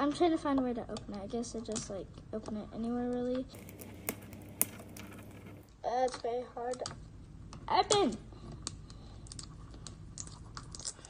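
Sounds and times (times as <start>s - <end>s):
fingernails clicking on plastic: 3.6s - 5.6s.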